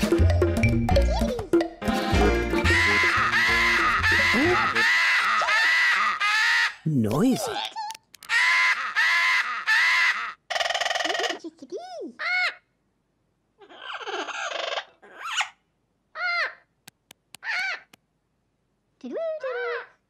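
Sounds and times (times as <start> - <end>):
macaw squawking: 2.6 - 7.6, 8.2 - 11.4, 17.4 - 18.0.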